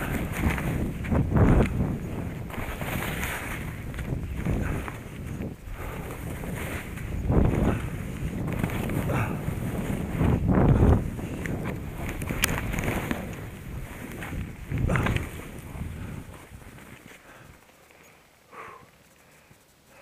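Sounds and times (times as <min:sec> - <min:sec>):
wind buffeting microphone: 0:00.0 - 0:17.6
skis scraping over snow: 0:00.0 - 0:18.2.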